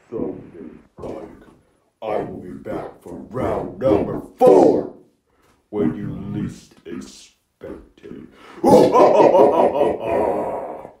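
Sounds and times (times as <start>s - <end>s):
person laughing muffled: 8.6s - 10.9s.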